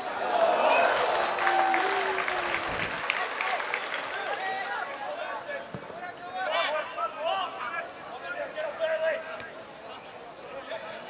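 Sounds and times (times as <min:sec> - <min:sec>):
players and spectators shouting: 0:00.0 - 0:03.5, 0:04.1 - 0:11.0
football ground crowd noise: 0:00.0 - 0:11.0
people clapping: 0:00.2 - 0:05.2.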